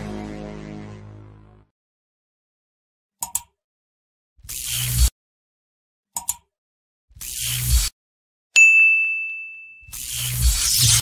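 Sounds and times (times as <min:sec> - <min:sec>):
high bell ding: 0:08.6 - 0:09.9.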